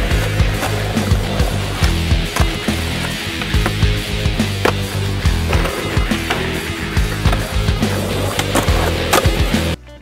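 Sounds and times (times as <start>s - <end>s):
skateboard clacking: 0.0s - 9.8s
skateboard wheels rolling on concrete: 0.0s - 9.8s
background music with low bass: 0.0s - 10.0s.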